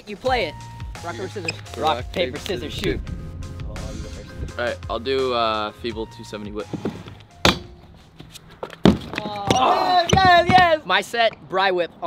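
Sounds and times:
scooter thudding on wooden ramp: 6.8s - 10.8s.

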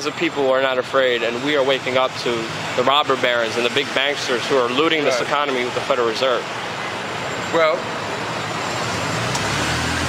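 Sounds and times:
steady rushing background noise: 0.0s - 9.5s.

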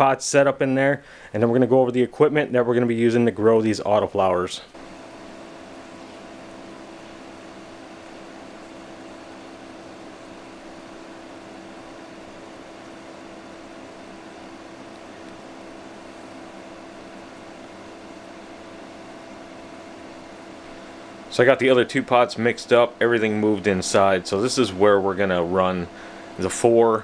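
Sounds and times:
ventilation fan running: 0.0s - 27.0s.

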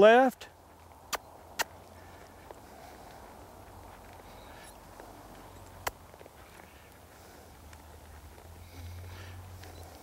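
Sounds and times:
horse walking on sand: 0.0s - 10.0s
sharp clicks: 5.8s - 6.0s.

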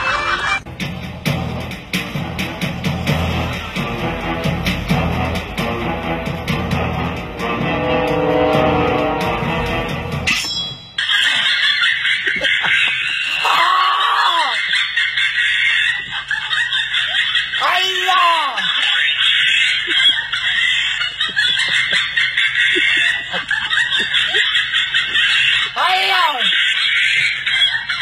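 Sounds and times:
guitar music: 5.3s - 10.3s
person crying out: 13.3s - 14.6s, 17.6s - 18.7s, 25.8s - 26.5s.

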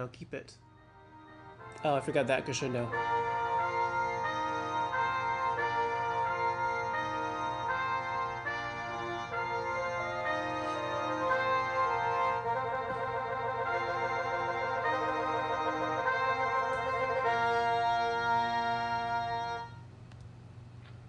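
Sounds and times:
synthesized brass chords: 0.7s - 19.8s
low hum: 2.9s - 21.0s.

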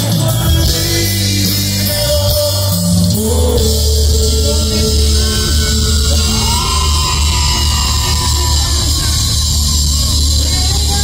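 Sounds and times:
congas: 0.0s - 11.0s
drum kit: 0.0s - 11.0s
live band playing loudly: 0.0s - 11.0s.

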